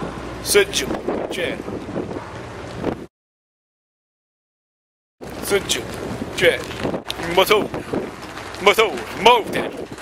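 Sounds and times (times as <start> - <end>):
wind buffeting microphone: 0.0 - 3.1, 5.2 - 10.0.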